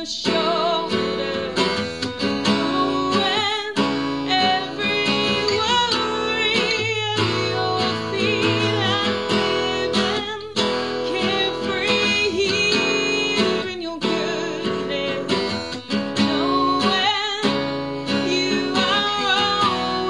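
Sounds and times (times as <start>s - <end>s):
strummed acoustic guitar: 0.0s - 20.0s
woman singing: 0.0s - 20.0s.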